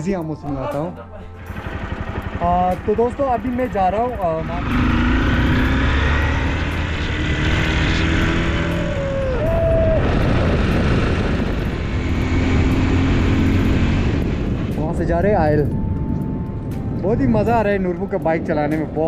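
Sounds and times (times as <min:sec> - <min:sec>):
motorcycle engine running: 0:01.4 - 0:18.3
wind rushing over microphone: 0:04.2 - 0:19.0.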